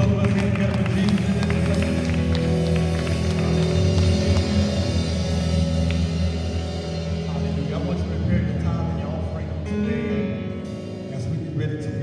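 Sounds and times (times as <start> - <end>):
held bass notes: 0.0 - 12.0
slow organ chords: 0.0 - 12.0.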